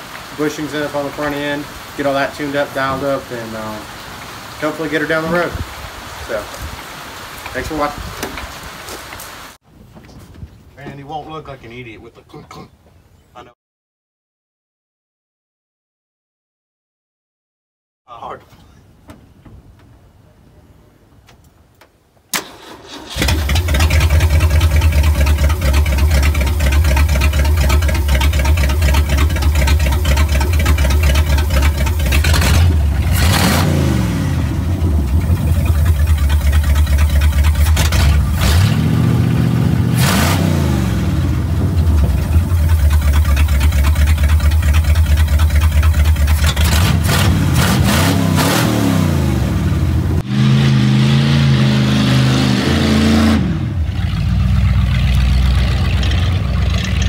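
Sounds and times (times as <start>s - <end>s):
engine cranking and starting: 22.3s - 33.5s, 35.0s - 38.7s, 41.8s - 47.7s
engine revving: 22.6s - 57.0s.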